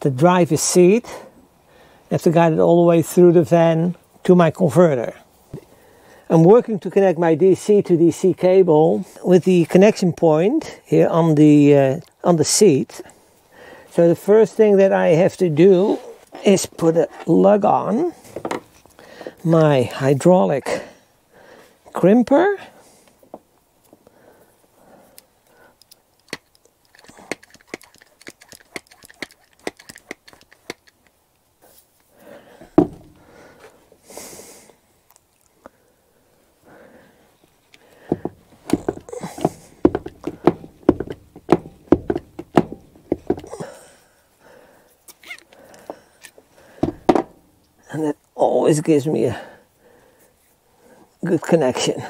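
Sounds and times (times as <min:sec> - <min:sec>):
clicks and knocks of handling: 0:25.8 - 0:31.2, 0:37.7 - 0:43.6.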